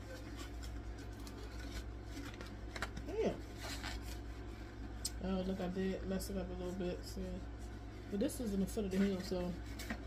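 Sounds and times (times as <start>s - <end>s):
crisp paper crackles: 0.0s - 4.7s
steady low hum: 0.0s - 10.0s.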